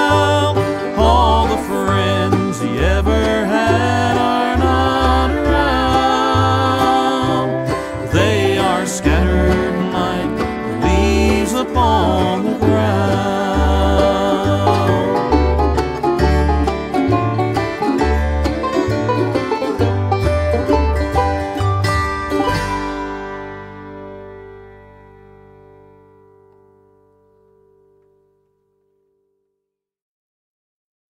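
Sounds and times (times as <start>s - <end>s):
fast banjo picking: 0.0s - 25.8s
walking bass line: 0.0s - 28.0s
guitar: 0.0s - 29.2s.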